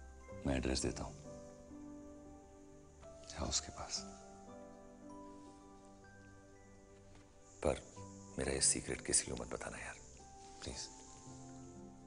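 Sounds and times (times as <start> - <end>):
soft film score music: 0.0 - 12.0.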